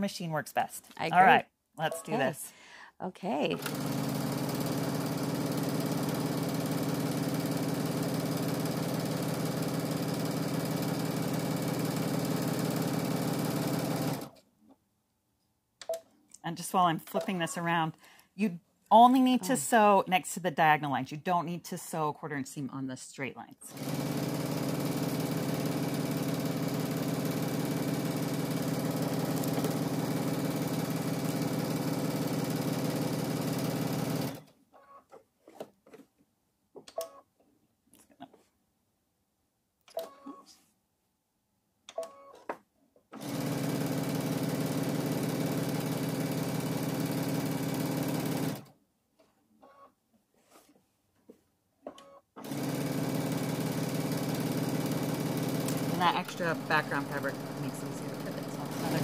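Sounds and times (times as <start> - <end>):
sewing machine stitching: 3.6 - 14.4, 23.7 - 34.5, 43.1 - 48.7, 52.0 - 59.0.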